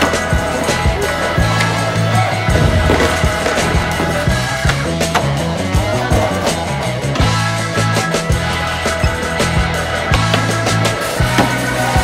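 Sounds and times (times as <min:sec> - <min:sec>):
loud music with bass line: 0:00.0 - 0:12.0
skateboard wheels rolling on concrete: 0:00.0 - 0:12.0
skateboard clacks and impacts: 0:02.5 - 0:05.4.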